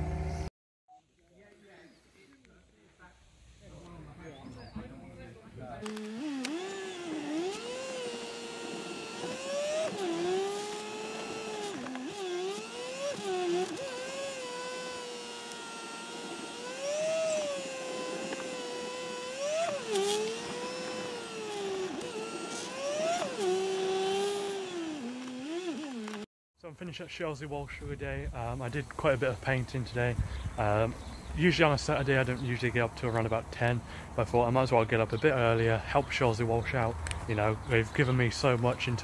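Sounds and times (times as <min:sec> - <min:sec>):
sped-up car engine accelerating: 0:00.0 - 0:00.5, 0:06.3 - 0:26.2.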